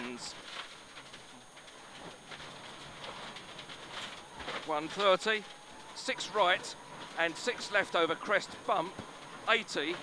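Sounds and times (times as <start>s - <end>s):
stones ticking on car: 0.0s - 10.0s.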